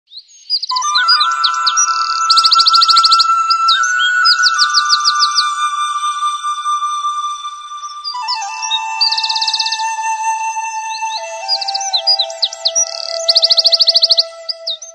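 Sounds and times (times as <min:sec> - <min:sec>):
small songbird chirping: 0:00.1 - 0:05.5, 0:07.9 - 0:14.9
steady held musical note: 0:00.8 - 0:14.9
background music steady note: 0:08.2 - 0:14.9.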